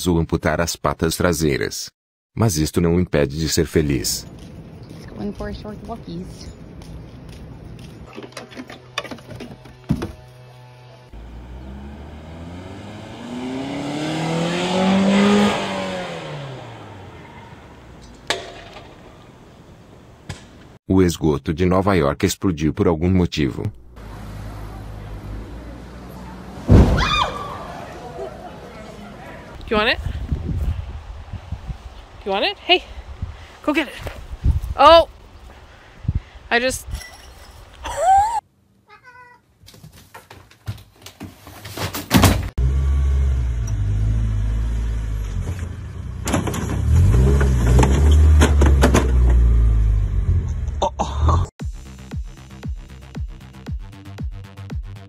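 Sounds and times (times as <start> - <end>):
car engine and exhaust droning: 8.8 - 18.2, 42.6 - 50.8.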